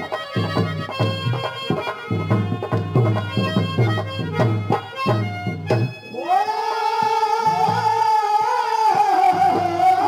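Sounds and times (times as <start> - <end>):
man singing long high note: 6.1 - 10.0.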